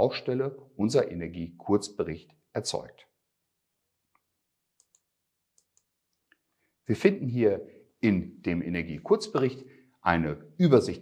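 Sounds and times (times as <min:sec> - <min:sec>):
faint small clicks: 0:04.1 - 0:06.6.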